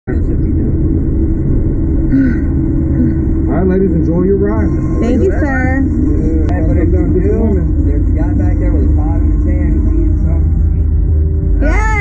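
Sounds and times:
low machine rumble and hum: 0.0s - 12.0s
man speaking: 3.5s - 10.9s.

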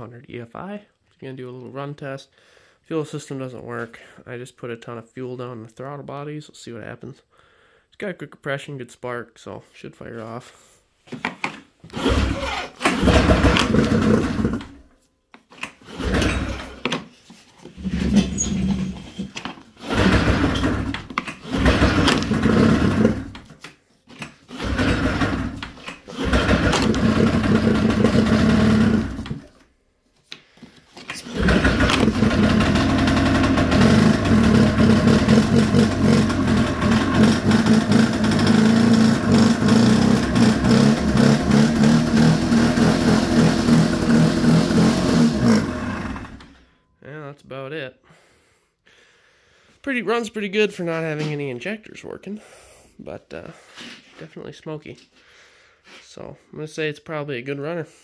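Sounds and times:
snowmobile engine firing and running: 11.9s - 14.8s, 15.9s - 16.8s, 19.8s - 23.5s, 24.5s - 29.6s, 31.2s - 46.5s.

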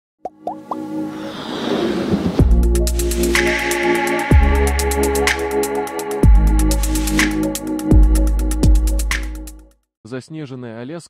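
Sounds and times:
rising electronic plops: 0.2s - 1.0s
electronic held chord: 2.8s - 8.6s.

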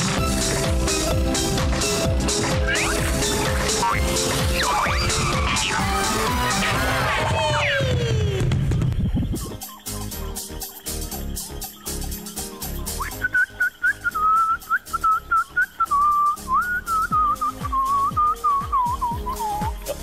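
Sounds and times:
background music with steady beat: 0.0s - 20.0s
person whistling a tune: 12.9s - 20.0s.

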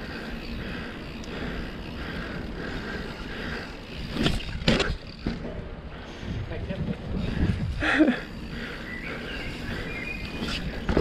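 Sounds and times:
bike tyres rolling on asphalt: 0.0s - 11.0s
wind rumble: 0.0s - 11.0s.

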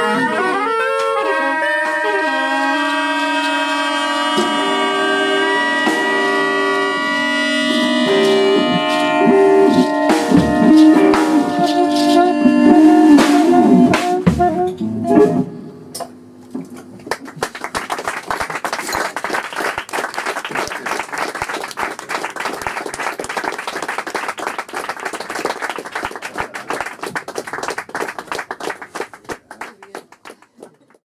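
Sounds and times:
saxophones and voice note: 0.0s - 14.8s
audience applauding: 17.0s - 31.0s.

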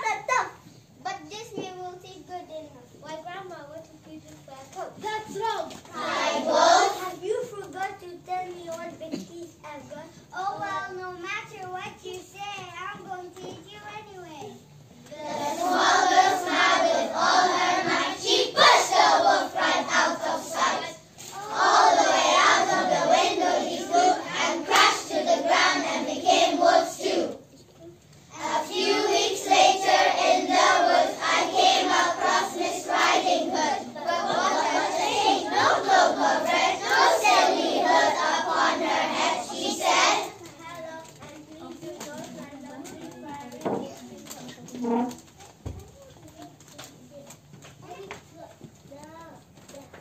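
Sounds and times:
children singing in unison: 6.0s - 7.0s, 15.2s - 27.2s, 28.4s - 40.3s.

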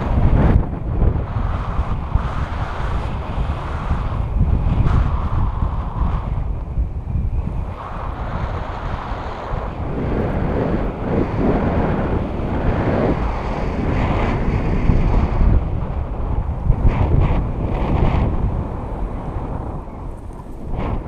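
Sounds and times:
wind buffeting microphone: 0.0s - 21.0s.

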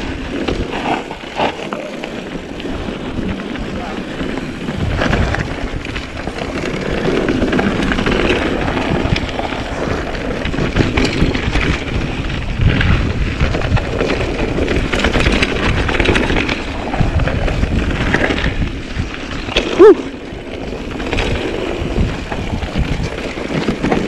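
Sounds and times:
bike rattling over bumps: 0.0s - 24.0s
tyres rumbling on dirt: 0.0s - 24.0s
wind rushing over microphone: 0.0s - 24.0s.

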